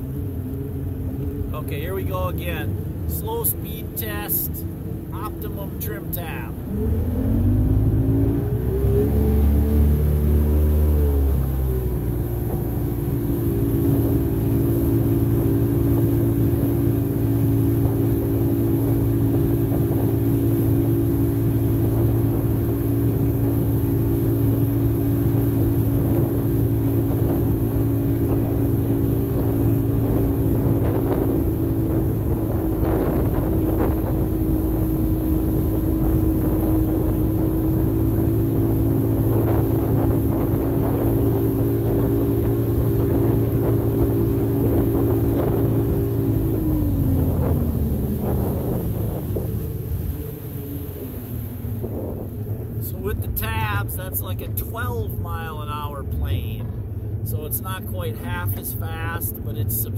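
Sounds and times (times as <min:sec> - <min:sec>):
jet boat engine revving: 0:00.0 - 0:59.9.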